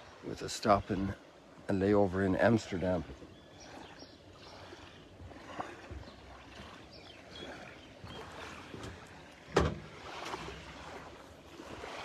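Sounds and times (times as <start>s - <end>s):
water lapping: 0.0s - 12.0s
footsteps on plastic dock: 4.8s - 12.0s.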